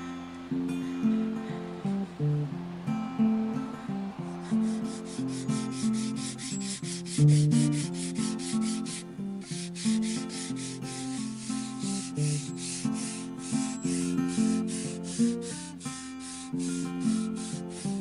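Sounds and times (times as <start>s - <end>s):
acoustic plucked-string music: 0.0s - 18.0s
metal file rasping on wood: 4.6s - 18.0s.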